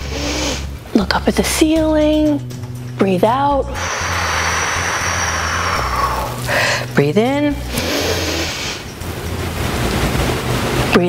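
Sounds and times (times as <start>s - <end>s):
low steady hum: 0.0s - 11.0s
person breathing in deeply: 3.8s - 7.0s, 7.7s - 8.9s.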